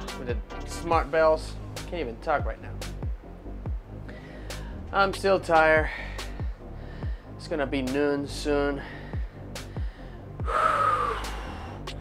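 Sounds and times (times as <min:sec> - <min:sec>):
background music with steady beat: 0:00.0 - 0:12.0
man gasping breathily: 0:04.0 - 0:04.9, 0:05.9 - 0:07.4, 0:08.8 - 0:12.0.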